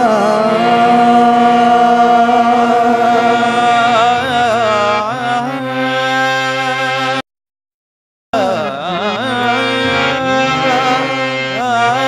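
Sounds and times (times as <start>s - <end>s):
person singing long note: 0.0s - 6.2s, 8.4s - 12.0s
harmonium: 0.0s - 7.3s, 8.3s - 12.0s.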